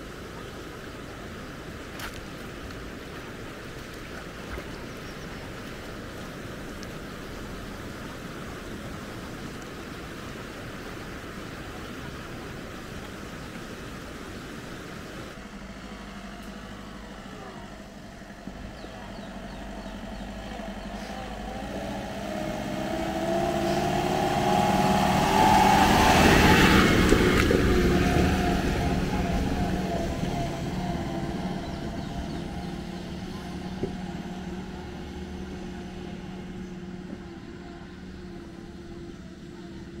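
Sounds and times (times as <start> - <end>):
vehicle engine passing: 15.4 - 40.0.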